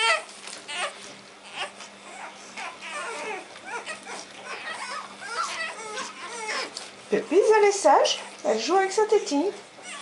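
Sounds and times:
puppies whining: 0.0s - 8.4s, 9.7s - 10.0s.

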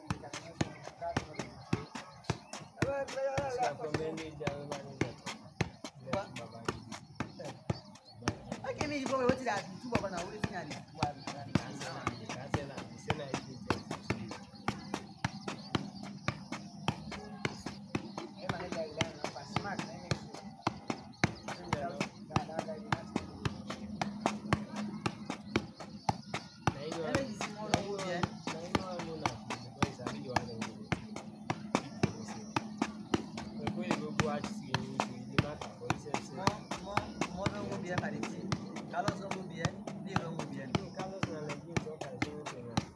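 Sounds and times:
people talking: 0.0s - 15.9s, 16.9s - 25.8s, 26.6s - 31.1s, 31.7s - 42.9s.

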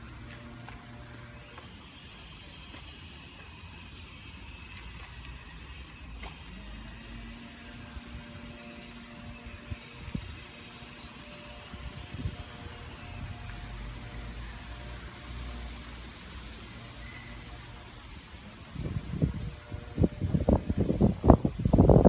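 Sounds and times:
low outdoor rumble: 0.0s - 22.0s.

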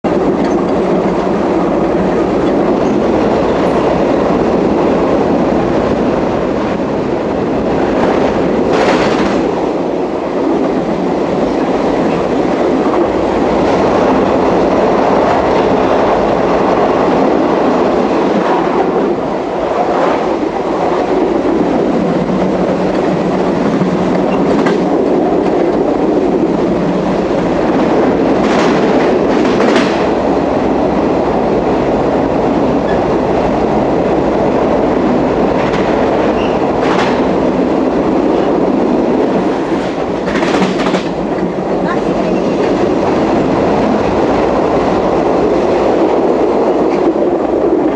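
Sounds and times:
train wheels rumbling on rails: 0.0s - 47.9s
sharp rail clacks: 7.8s - 9.8s, 22.4s - 25.9s, 27.8s - 30.2s, 35.5s - 37.6s, 39.3s - 42.8s.

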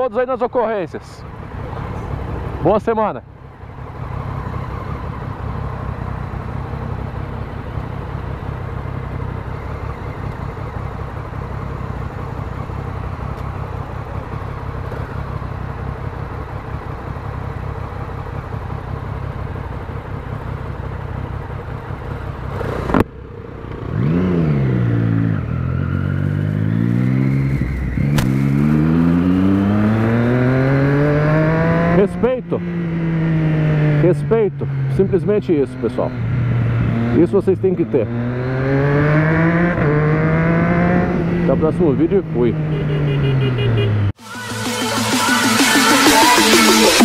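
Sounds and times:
motorcycle engine idling and revving: 0.0s - 47.0s.

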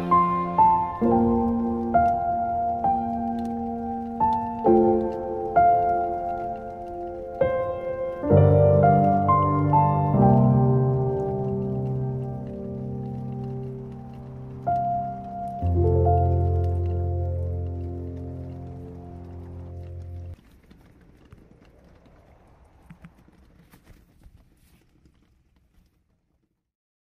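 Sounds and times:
piano chords: 0.0s - 20.4s
faint crackles: 0.0s - 26.7s.

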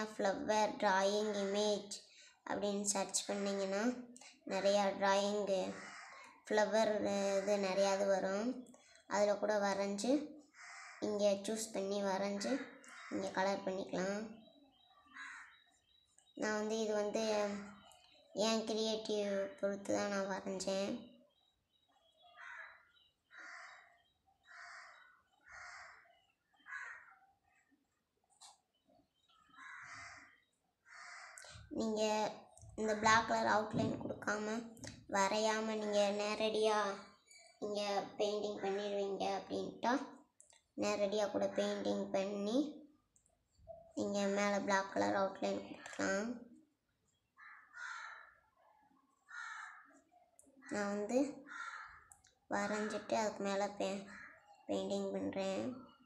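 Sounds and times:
bird harsh calls: 5.6s - 6.5s, 10.4s - 11.0s, 12.4s - 13.3s, 14.3s - 16.2s, 21.0s - 27.6s, 29.2s - 31.8s, 47.4s - 48.4s, 49.2s - 50.0s, 51.4s - 52.2s
crow cawing: 5.7s - 6.4s, 10.4s - 11.0s, 12.6s - 13.3s, 15.1s - 15.6s, 22.3s - 27.2s, 29.5s - 31.4s, 47.4s - 48.4s, 49.2s - 50.0s, 51.4s - 52.2s, 54.1s - 54.5s.

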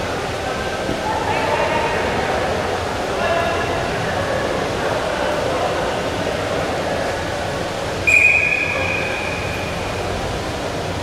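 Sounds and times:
arena crowd hubbub: 0.0s - 11.0s
referee's whistle blast: 8.1s - 9.7s.

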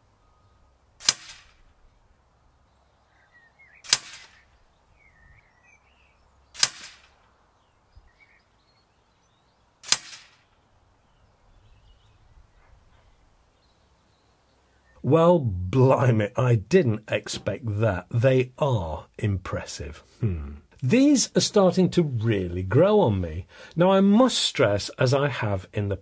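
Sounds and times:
air rifle shots: 1.0s - 1.6s, 3.8s - 4.5s, 6.6s - 7.2s, 9.8s - 10.5s.

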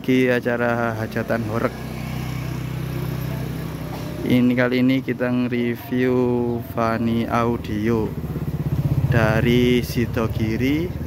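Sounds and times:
engine humming steadily: 0.0s - 11.0s.

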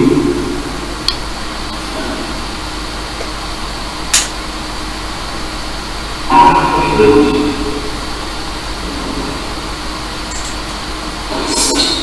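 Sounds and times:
steady static: 0.0s - 12.0s
chopped voice-like fragments: 11.3s - 12.0s.

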